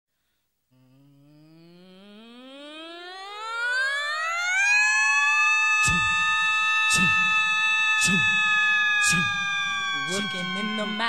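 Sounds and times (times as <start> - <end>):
voices imitating a siren: 2.0 - 11.0.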